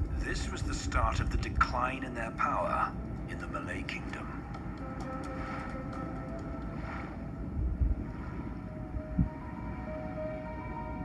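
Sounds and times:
faint music tones: 0.0 - 11.0
wind: 0.0 - 11.0
sea water: 4.2 - 11.0.

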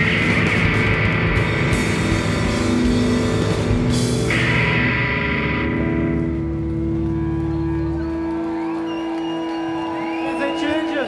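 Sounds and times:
electric guitar held chord: 0.0 - 7.1
bass guitar held tone: 0.0 - 7.8.

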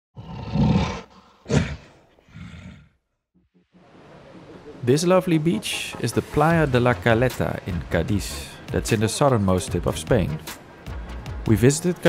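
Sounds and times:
deep roar: 0.2 - 3.0.

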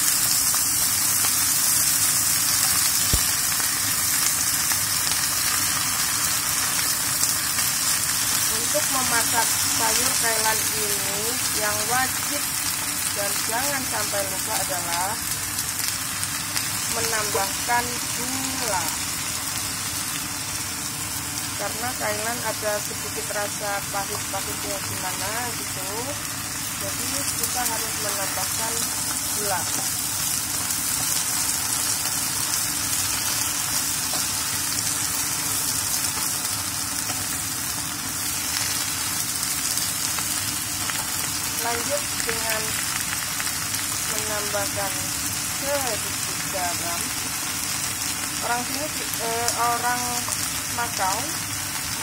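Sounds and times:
vegetables sizzling in a pan: 0.0 - 52.0.

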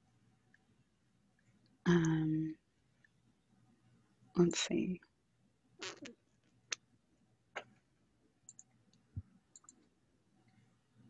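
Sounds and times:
computer mouse clicks: 8.5 - 9.9.

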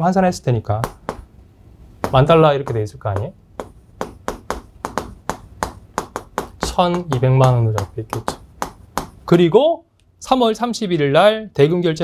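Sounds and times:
chalk tapping on chalkboard: 0.8 - 1.3, 2.0 - 9.3.

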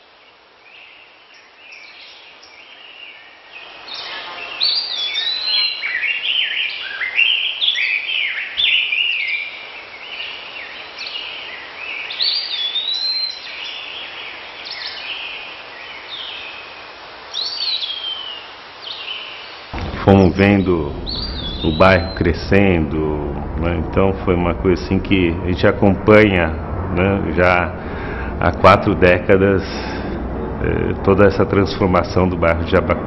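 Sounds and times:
faint outdoor hiss: 0.0 - 33.0
songbirds chirping: 0.0 - 33.0.

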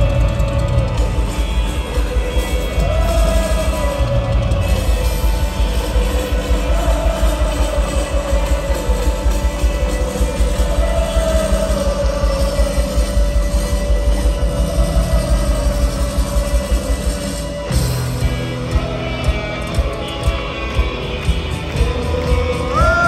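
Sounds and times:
live rock band playing loudly: 0.0 - 23.0.

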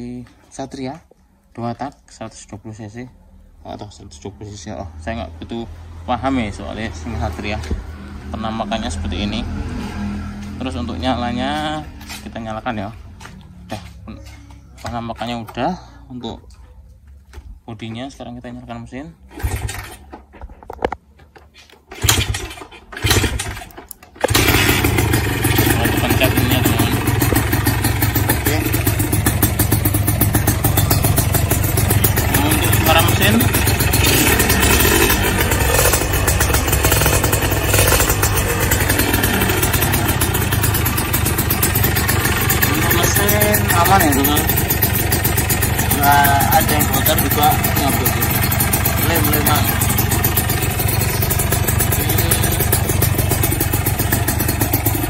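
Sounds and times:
two-stroke engine idling: 22.0 - 23.6, 24.2 - 55.0.

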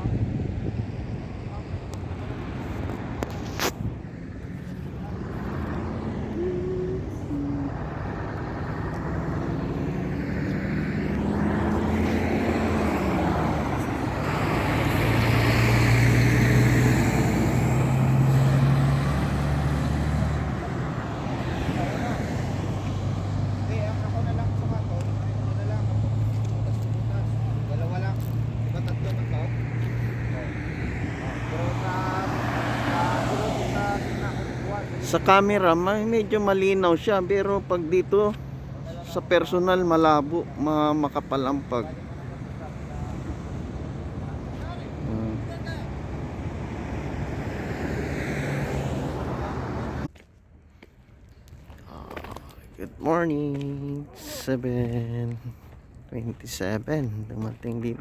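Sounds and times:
highway traffic: 0.0 - 58.0
vehicle passing: 0.0 - 58.0.

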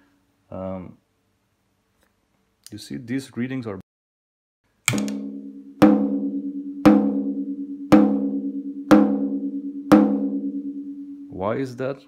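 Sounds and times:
tom drum hits ringing: 4.9 - 11.3.

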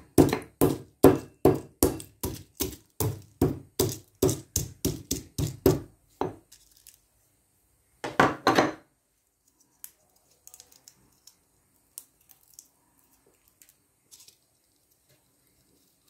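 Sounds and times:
stone pestle pounding in mortar: 0.0 - 6.4.

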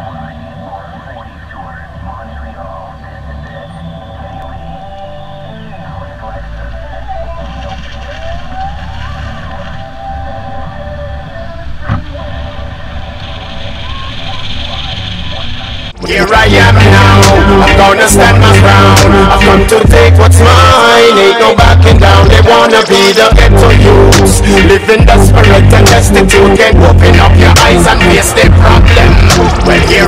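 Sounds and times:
engine and road rumble: 0.0 - 20.7, 23.3 - 30.0.

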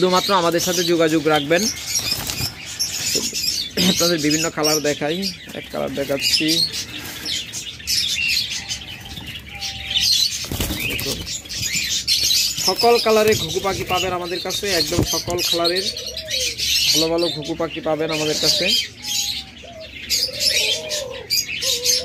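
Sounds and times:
birds chirping: 0.0 - 22.0
doves flapping wings: 1.9 - 2.7, 10.4 - 11.8.

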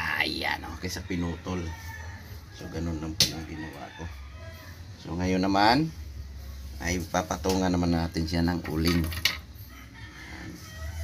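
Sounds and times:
rooster crowing faintly: 9.6 - 11.0.

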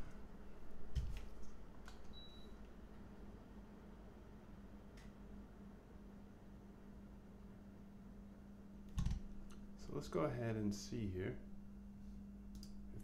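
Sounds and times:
low steady hum: 0.0 - 13.0
faint click: 4.9 - 5.2.

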